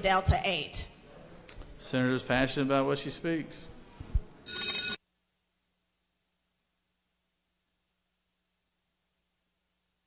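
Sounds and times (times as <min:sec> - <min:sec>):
bright electronic ringing tone: 0:04.5 - 0:05.0.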